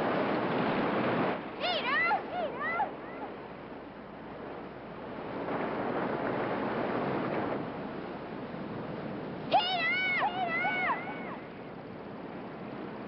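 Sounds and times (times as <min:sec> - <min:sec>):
mountain stream rushing water: 0:00.0 - 0:03.8.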